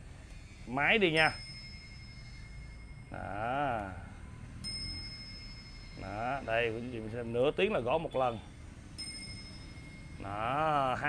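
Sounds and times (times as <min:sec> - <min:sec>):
clock striking metallic ding: 0:01.2 - 0:03.2, 0:04.6 - 0:07.2, 0:09.0 - 0:10.2.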